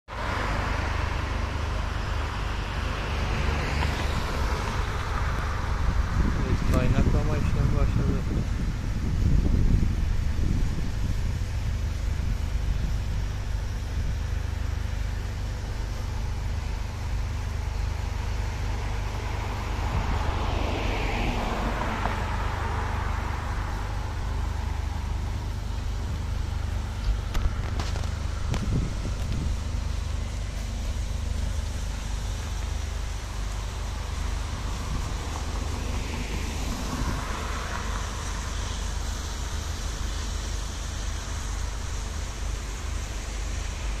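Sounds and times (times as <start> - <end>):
constant low rumble: 0.0 - 44.0
road vehicles passing by: 0.0 - 44.0.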